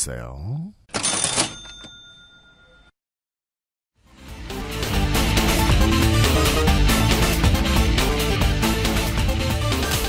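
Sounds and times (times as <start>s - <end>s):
bell-like ding ringing: 1.4s - 2.9s.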